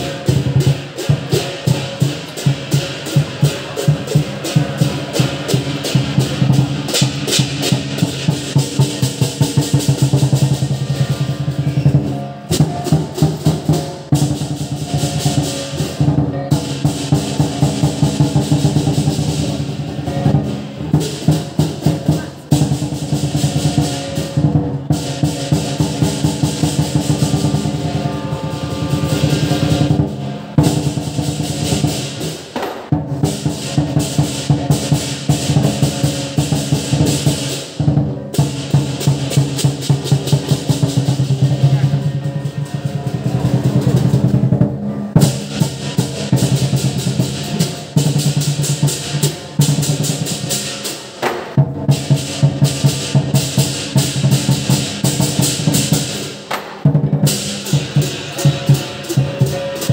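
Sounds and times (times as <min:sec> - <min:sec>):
cymbals clashing: 0:00.0 - 0:59.9
large drum beating fast: 0:00.0 - 0:59.9
gong ringing: 0:25.0 - 0:31.1.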